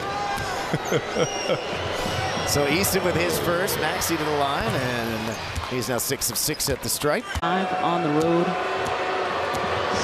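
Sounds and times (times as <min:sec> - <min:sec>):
murmur of arena crowd: 0:00.0 - 0:10.0
commentators laughing: 0:00.4 - 0:01.8.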